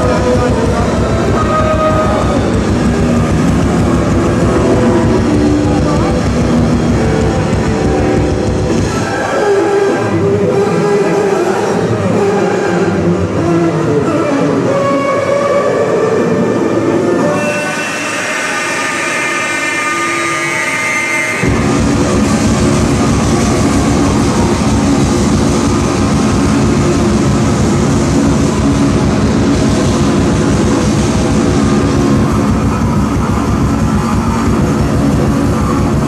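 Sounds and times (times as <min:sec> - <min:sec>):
electric bass and drum music: 0:00.0 - 0:09.4, 0:21.4 - 0:36.0.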